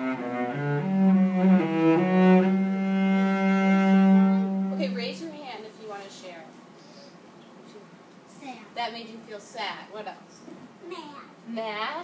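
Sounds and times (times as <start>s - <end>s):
cello bowed slowly: 0.0s - 5.3s.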